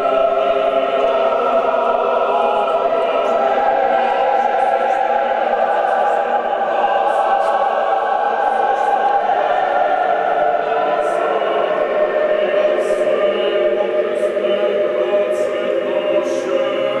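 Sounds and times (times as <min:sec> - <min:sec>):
choir singing slow chant: 0:00.0 - 0:17.0.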